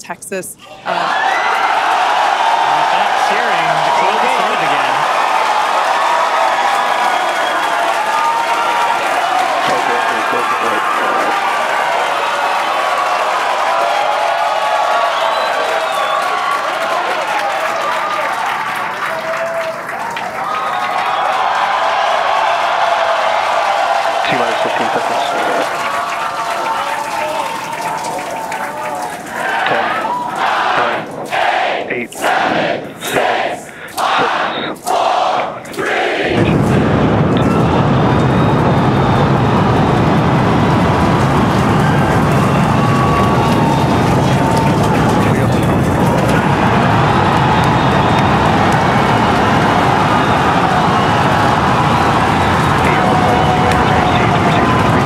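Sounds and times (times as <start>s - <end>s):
crowd counting down: 0.0s - 55.0s
deep roar of rocket engines: 36.3s - 55.0s.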